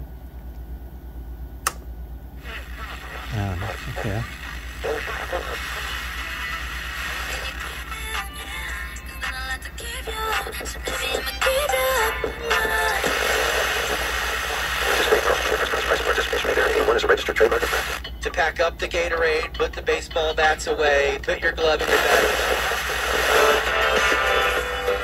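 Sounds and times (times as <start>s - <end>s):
radio static hiss: 2.4s - 18.5s, 20.8s - 25.0s
snatches of radio music and singing: 2.4s - 25.0s.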